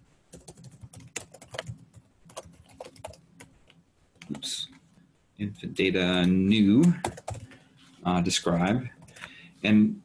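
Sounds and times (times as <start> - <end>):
keyboard typing: 0.3 - 4.8, 6.2 - 7.6, 8.9 - 9.3.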